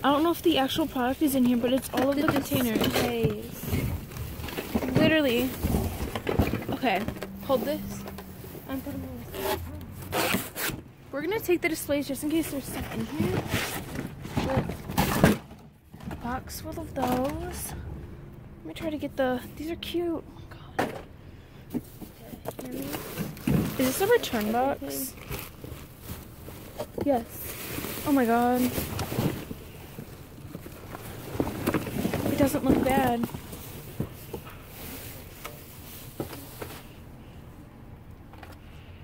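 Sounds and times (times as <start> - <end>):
plastic bags and cardboard rustling: 0.0 - 17.7, 21.6 - 37.3.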